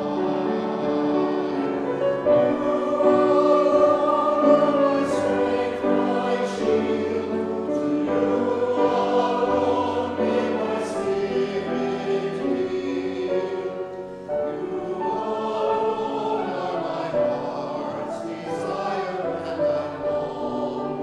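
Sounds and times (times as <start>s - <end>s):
mixed choir singing: 0.0s - 21.0s.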